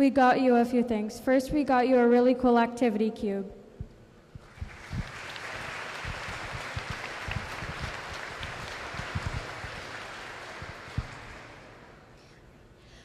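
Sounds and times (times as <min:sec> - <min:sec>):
audience applauding: 0:04.4 - 0:12.2.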